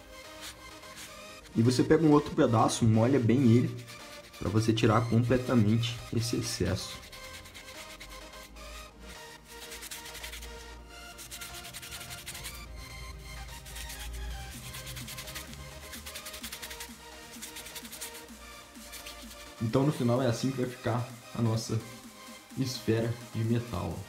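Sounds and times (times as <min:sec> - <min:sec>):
background music: 0:00.0 - 0:24.0
cloth rubbing on foil ball: 0:00.3 - 0:02.2, 0:03.0 - 0:08.5, 0:09.5 - 0:12.7, 0:13.6 - 0:19.8.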